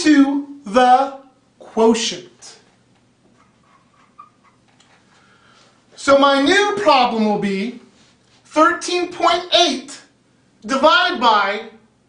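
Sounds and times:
marker squeaking on whiteboard: 0:03.2 - 0:05.3.

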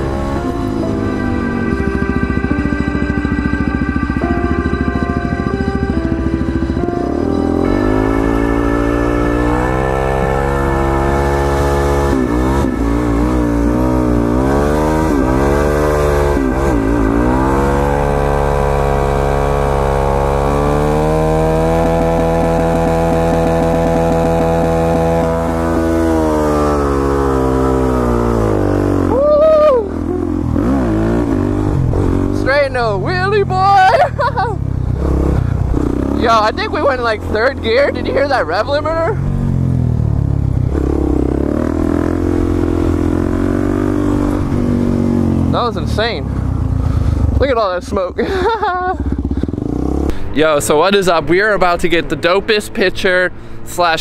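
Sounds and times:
background music: 0:00.0 - 0:29.2
motorcycle engine revving hard: 0:00.0 - 0:53.6.

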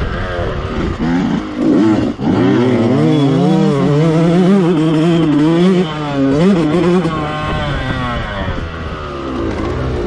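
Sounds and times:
dirt bike engine revving: 0:00.0 - 0:10.0.

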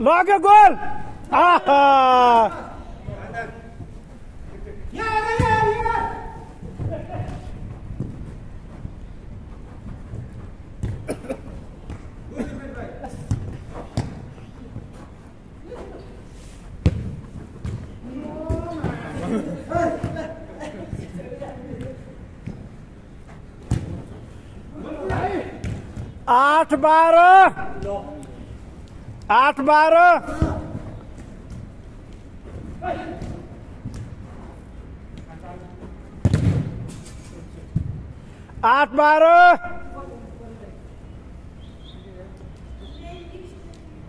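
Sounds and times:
ball kicked hard: 0:36.2 - 0:36.8.

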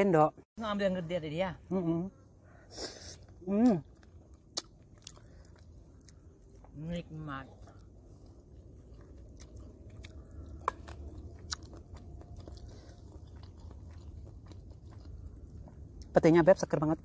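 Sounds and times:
chewing and mouth sounds: 0:03.6 - 0:06.7, 0:07.6 - 0:16.2.

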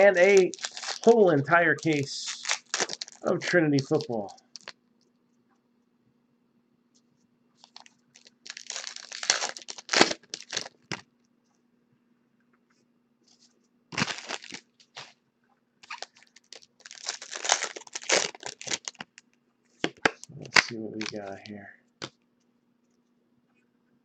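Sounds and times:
packaging tearing and crinkling: 0:00.0 - 0:04.8, 0:07.6 - 0:11.0, 0:13.9 - 0:15.1, 0:15.8 - 0:19.2, 0:20.0 - 0:21.5.

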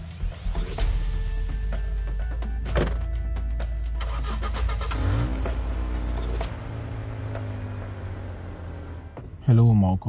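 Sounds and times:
car engine starting and idling: 0:01.9 - 0:10.0
car door shutting: 0:02.6 - 0:03.1, 0:04.3 - 0:09.4.

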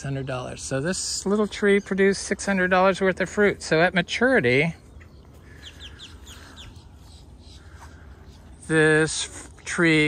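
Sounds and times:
low steady rumble: 0:00.0 - 0:10.0
faint bird chirps: 0:04.6 - 0:08.7.

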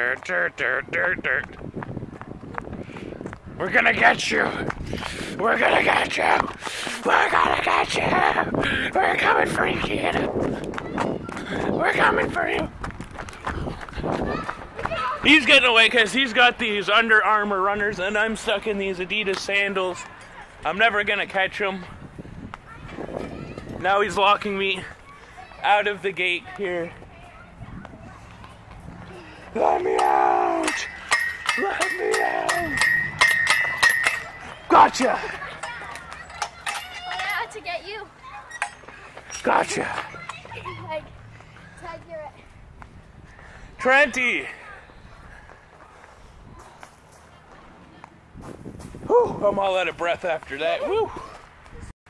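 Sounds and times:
man calling out: 0:00.0 - 0:01.5, 0:05.4 - 0:10.3, 0:29.5 - 0:30.9, 0:31.6 - 0:32.8
running footsteps on asphalt: 0:01.2 - 0:07.6, 0:09.6 - 0:15.9, 0:21.8 - 0:29.6, 0:37.5 - 0:51.9.

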